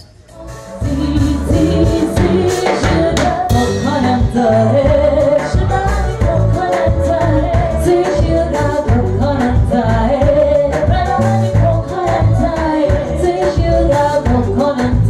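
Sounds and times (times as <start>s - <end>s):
bass guitar: 0.0s - 15.0s
women singing: 0.0s - 15.0s
drum beat: 0.8s - 15.0s.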